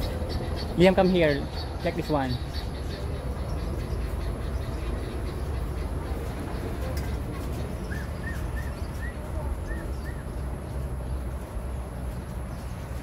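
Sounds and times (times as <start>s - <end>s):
bird chirping: 0.0s - 13.0s
steady low rumble: 0.0s - 13.0s.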